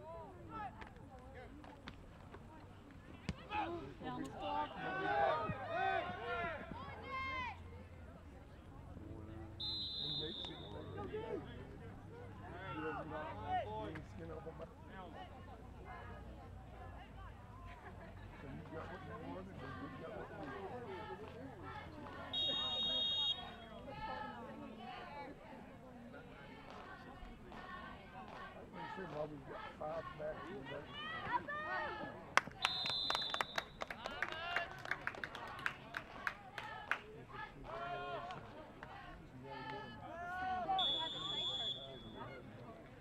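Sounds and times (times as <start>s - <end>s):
crowd voices: 0.0s - 43.0s
referee whistle blast: 9.6s - 10.9s, 22.4s - 23.7s, 32.6s - 33.8s, 40.7s - 42.2s.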